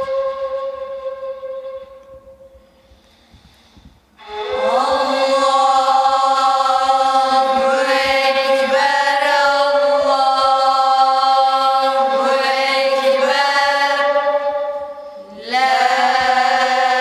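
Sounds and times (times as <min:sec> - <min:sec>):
reed flute note: 0:00.0 - 0:05.8, 0:12.0 - 0:16.6
boys chanting in unison: 0:04.6 - 0:14.6, 0:15.2 - 0:17.0.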